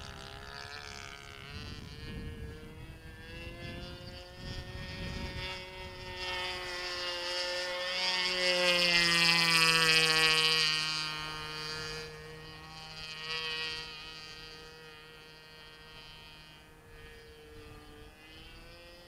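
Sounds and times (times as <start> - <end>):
model airplane engine droning: 0.0 - 19.0.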